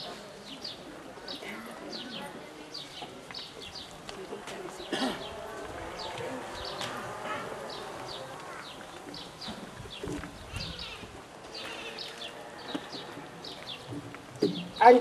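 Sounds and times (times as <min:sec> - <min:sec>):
faint murmur of people: 0:00.0 - 0:14.9
small birds chirping: 0:00.5 - 0:15.0.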